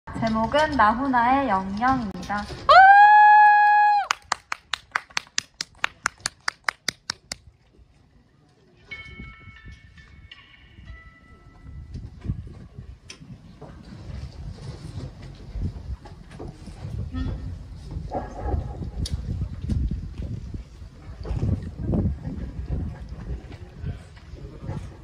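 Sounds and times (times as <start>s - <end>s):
fast train of sharp clicks: 3.5s - 7.4s
equipment thumps and rumble: 13.3s - 23.6s.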